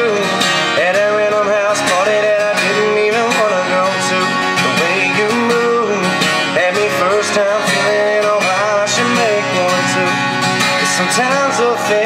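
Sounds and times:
acoustic guitar strumming: 0.0 - 12.0
person singing: 0.0 - 12.0.

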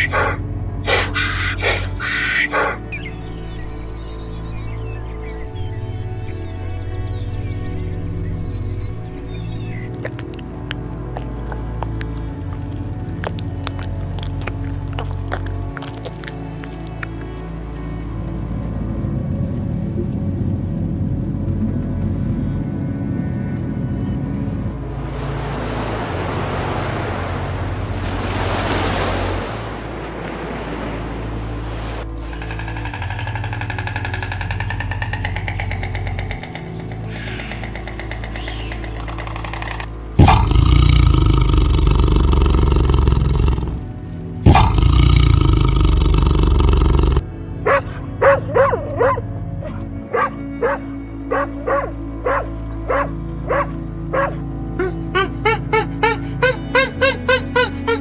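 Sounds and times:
chimpanzee hooting: 0.0 - 2.9, 33.0 - 43.8, 44.5 - 49.2, 54.2 - 58.0
background music: 0.0 - 58.0
tiger growls: 32.2 - 48.4.

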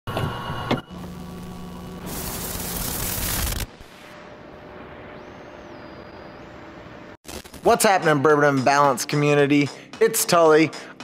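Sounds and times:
mechanical whir and clunk: 0.1 - 1.9
steady hum: 0.9 - 7.4
static burst: 2.0 - 7.6.

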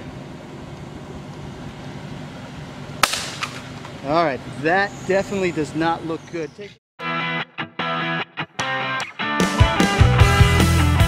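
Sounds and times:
tablet cracking on asphalt: 3.0 - 3.8.

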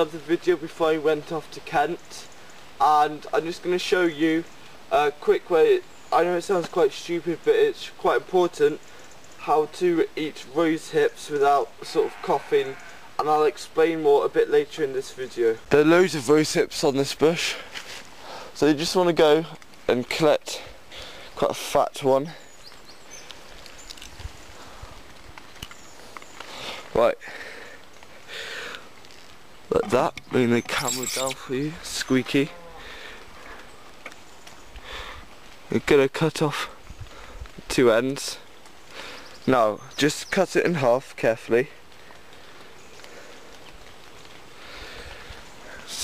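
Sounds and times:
faint outdoor hiss: 0.0 - 46.0.

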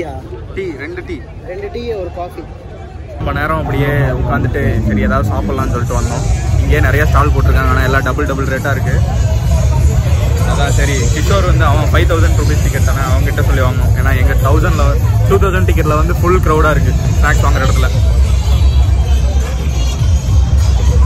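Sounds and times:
man talking: 3.2 - 9.2, 10.3 - 18.1
steady low rumble: 3.2 - 21.0.

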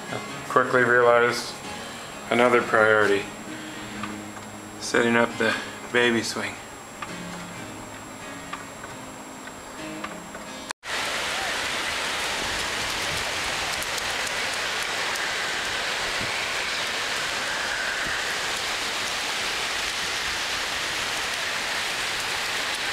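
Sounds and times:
small waves breaking on shore: 10.8 - 22.9.

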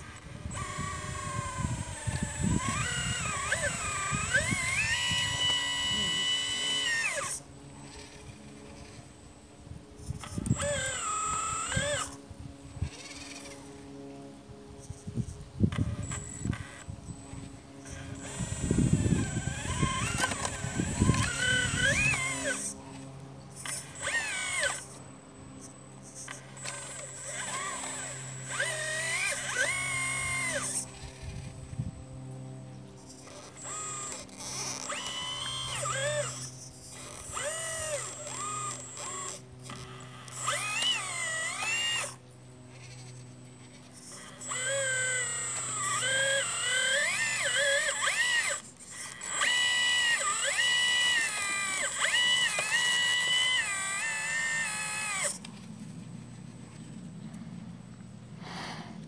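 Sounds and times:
electric pump whining: 0.0 - 59.0
steady low hum: 0.0 - 59.0.

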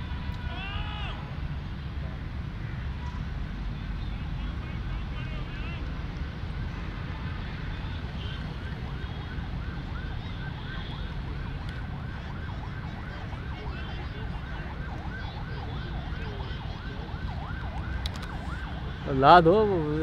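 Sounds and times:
emergency siren yelping: 7.9 - 20.0.

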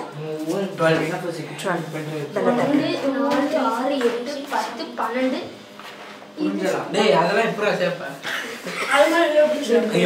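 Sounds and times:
people talking: 0.0 - 5.6, 6.4 - 10.0.

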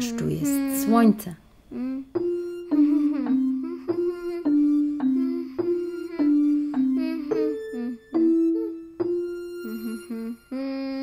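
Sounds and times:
person humming a melody: 0.0 - 1.1, 1.7 - 11.0.

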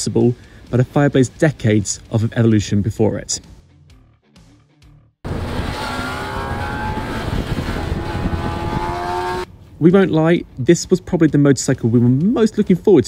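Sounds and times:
motorbike engine accelerating: 5.3 - 9.5.

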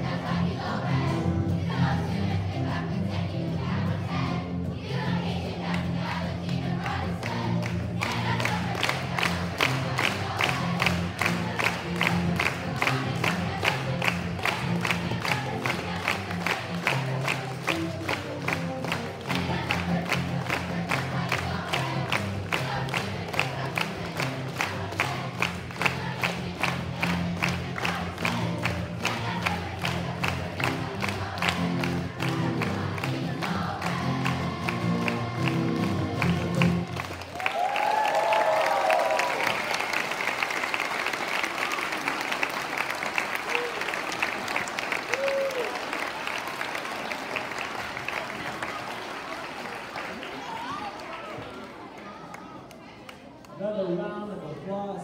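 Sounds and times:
children's choir singing: 0.0 - 37.3
hands clapping in time: 7.2 - 51.2
guitar accompaniment: 9.3 - 37.1.

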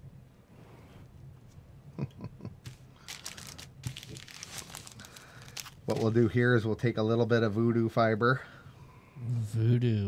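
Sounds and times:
material crinkling and rustling: 2.6 - 6.4.

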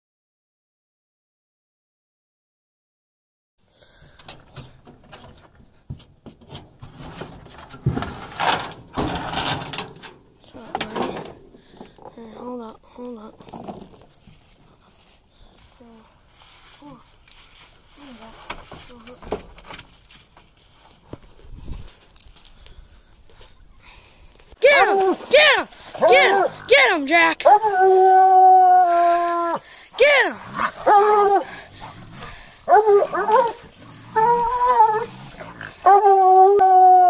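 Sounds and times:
handling knocks and scrapes: 4.4 - 12.2.

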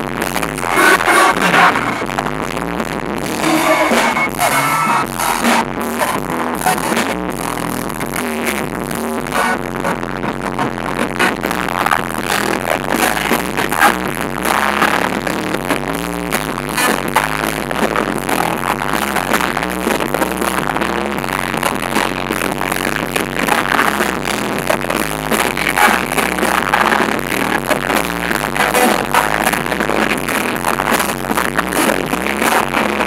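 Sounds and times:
dance beat: 0.0 - 33.0
live music through pa: 0.3 - 33.0.

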